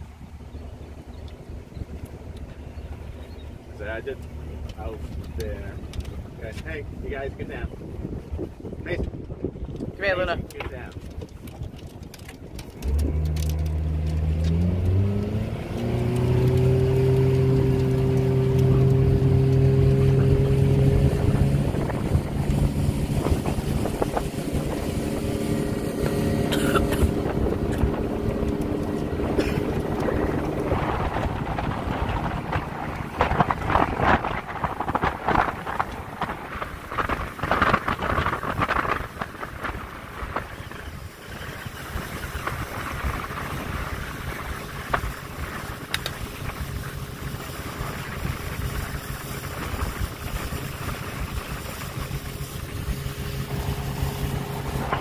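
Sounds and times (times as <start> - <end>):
motorboat engine throttling up: 0.0 - 55.0
water rushing along hull: 0.0 - 55.0
waves slapping hull: 0.0 - 55.0.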